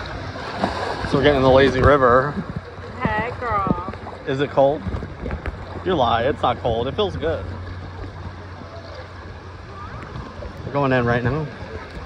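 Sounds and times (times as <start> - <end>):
distant voices: 0.0 - 12.0
water flowing: 0.0 - 12.0.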